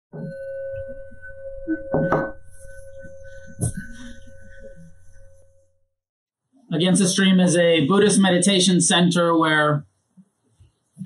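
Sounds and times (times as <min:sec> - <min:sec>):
singing bowl ringing: 0:00.2 - 0:05.8
person speaking: 0:06.7 - 0:09.8.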